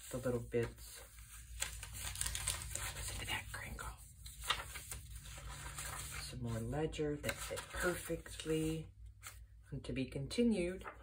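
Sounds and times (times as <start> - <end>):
paper page crinkling: 0.0 - 9.4.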